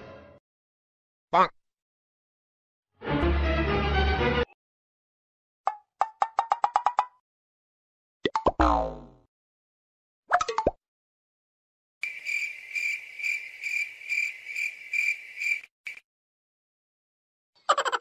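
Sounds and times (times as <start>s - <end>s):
falling boing: 8.5s - 9.2s.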